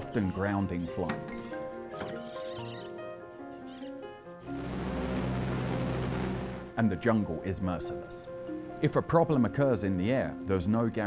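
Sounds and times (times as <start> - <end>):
background music with sustained tones: 0.0 - 11.0
twin piston aircraft engines: 4.5 - 6.7.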